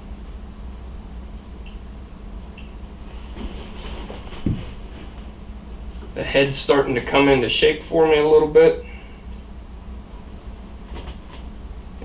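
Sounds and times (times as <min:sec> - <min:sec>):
steady low hum: 0:00.0 - 0:12.0
soft bump: 0:03.1 - 0:05.3.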